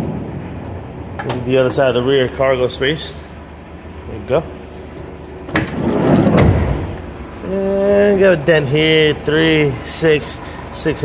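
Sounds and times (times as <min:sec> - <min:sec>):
sliding door rumbling on track: 0:05.4 - 0:07.4
door latching thud: 0:05.5 - 0:07.0.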